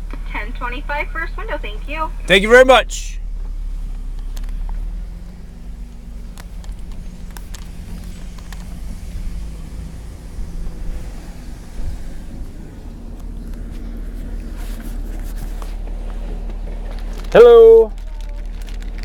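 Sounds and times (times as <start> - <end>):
car engine rumbling: 0.0 - 19.0.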